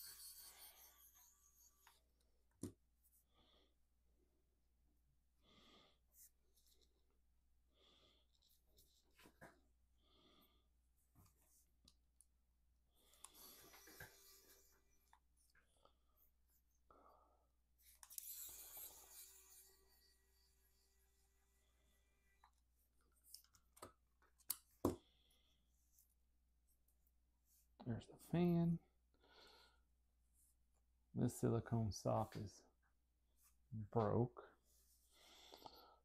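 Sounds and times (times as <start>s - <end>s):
screwdriver scraping: 0.0s - 2.0s, 17.8s - 20.7s.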